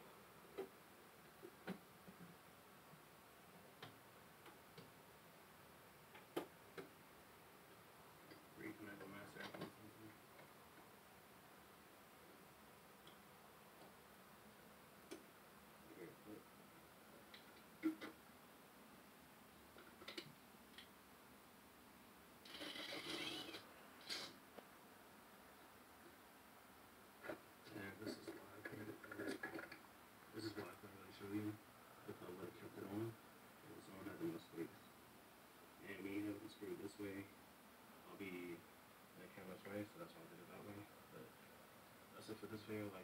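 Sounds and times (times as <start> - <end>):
faint man talking: 8.6 - 10.2, 15.9 - 16.4, 27.6 - 29.6, 30.3 - 34.8, 35.8 - 37.3, 38.0 - 38.6, 39.2 - 41.3, 42.1 - 43.0
soft clicks: 13.0 - 14.0.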